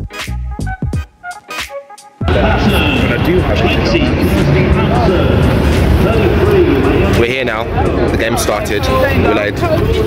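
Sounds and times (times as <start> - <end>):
people talking at once: 2.3 - 10.0.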